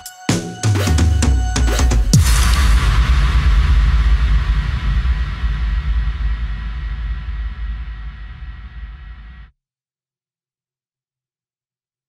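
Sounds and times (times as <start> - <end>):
electronic breaks drums: 0.0 - 9.5
deep bass rumble: 1.6 - 9.5
hissing reverb wash: 2.0 - 9.5.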